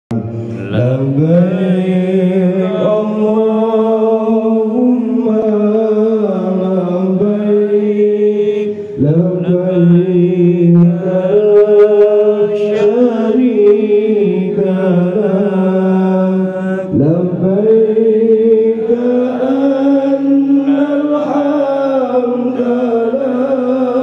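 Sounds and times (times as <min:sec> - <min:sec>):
men chanting in unison: 0:00.5 - 0:24.0.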